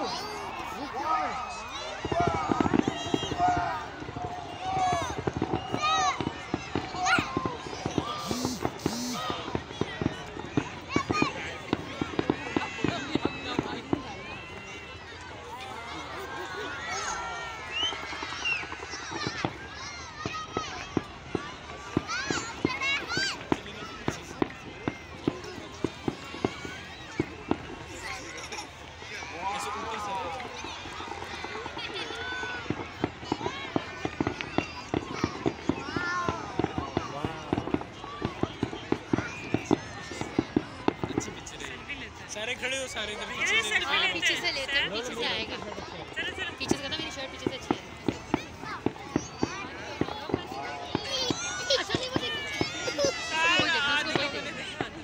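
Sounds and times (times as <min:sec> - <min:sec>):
crowd talking: 0:00.0 - 0:55.0
fireworks bangs: 0:01.8 - 0:14.4, 0:17.0 - 0:28.4, 0:30.6 - 0:42.3, 0:43.0 - 0:55.0.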